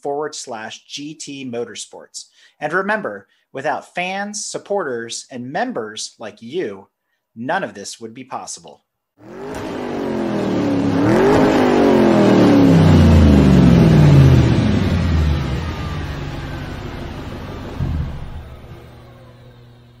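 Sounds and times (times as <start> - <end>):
car speeding past: 9.2 - 18.8
short thump: 17.7 - 18.8.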